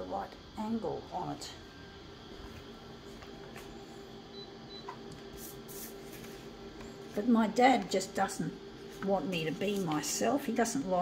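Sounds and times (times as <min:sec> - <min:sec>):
photocopier humming: 0:00.0 - 0:11.0.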